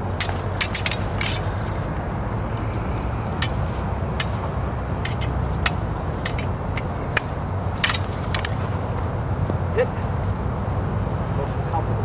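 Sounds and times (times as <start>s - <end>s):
steady low rumble: 0.0s - 12.0s
sword blades clinking: 0.1s - 1.6s, 3.3s - 8.6s.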